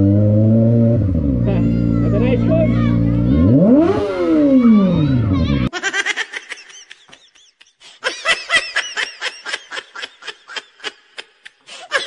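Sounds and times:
children laughing and giggling: 1.4s - 12.0s.

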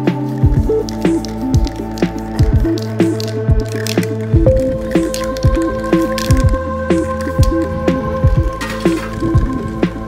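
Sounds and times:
kick drum beat: 0.4s - 0.8s, 1.5s - 1.7s, 2.4s - 2.7s, 3.5s - 3.7s, 4.4s - 4.8s, 8.2s - 8.6s.

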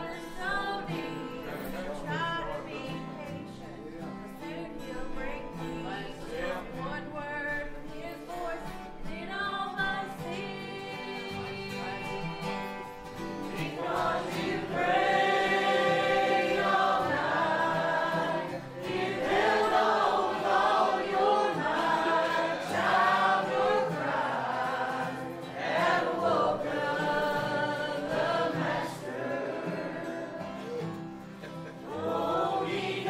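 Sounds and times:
congregation singing a hymn: 0.0s - 8.8s, 9.7s - 33.0s
acoustic guitars: 0.0s - 33.0s.

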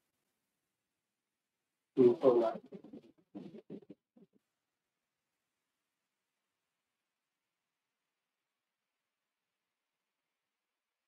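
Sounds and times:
man speaking: 2.0s - 2.7s.

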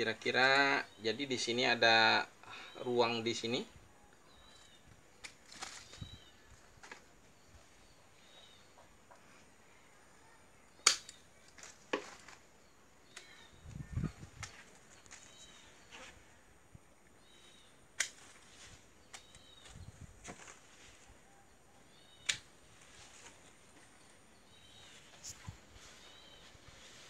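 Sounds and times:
pruning shears snipping branches: 10.8s - 12.5s, 18.0s - 20.7s, 22.2s - 23.4s.

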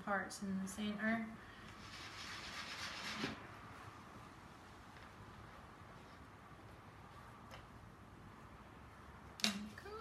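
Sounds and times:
rubbing and rustling of paste: 1.7s - 7.8s.

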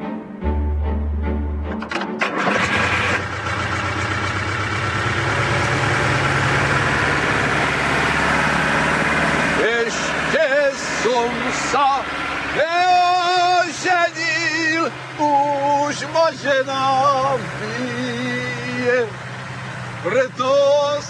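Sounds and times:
music: 0.0s - 2.5s
old tractor engine starting and running: 1.6s - 21.0s.

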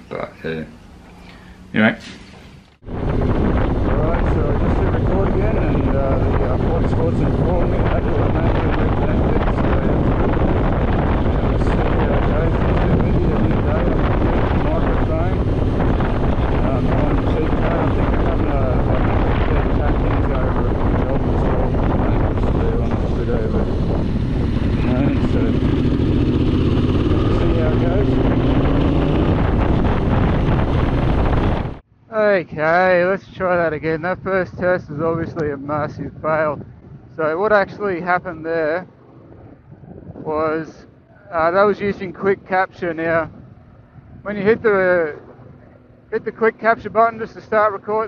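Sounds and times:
heavy wind buffeting: 0.0s - 48.0s
motorcycle engine running: 2.8s - 31.8s.

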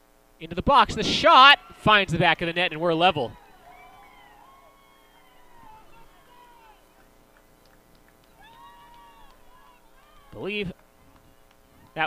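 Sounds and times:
girls shouting and cheering: 8.4s - 10.4s.

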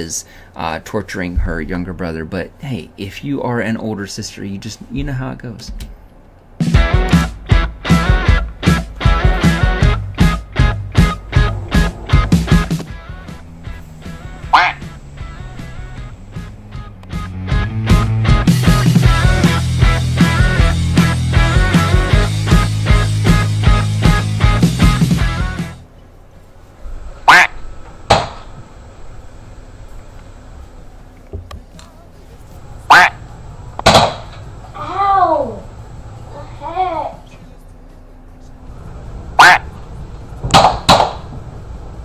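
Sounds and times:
background music: 6.5s - 25.9s
recorded duck quack: 14.0s - 16.5s, 27.2s - 28.4s, 32.8s - 34.3s, 39.4s - 39.8s
toy gun shots: 33.8s - 34.4s, 40.5s - 41.3s
small child crying out: 34.8s - 35.7s.

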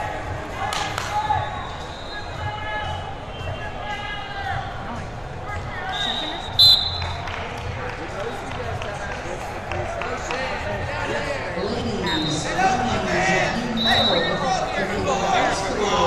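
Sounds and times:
voices in a gym: 0.0s - 16.0s
referee's whistle blast: 1.4s - 2.6s, 5.9s - 7.2s, 13.8s - 14.8s.

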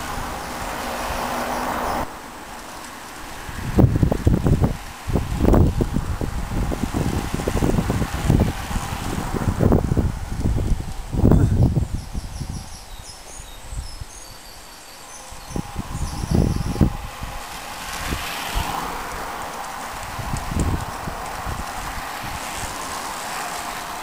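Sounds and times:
bicycle tyres hissing on tarmac: 0.0s - 24.0s
wind gusts on microphone: 0.0s - 24.0s.

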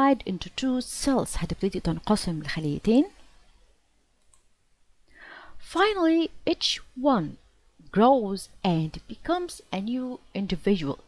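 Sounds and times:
computer mouse click: 4.2s - 4.5s.

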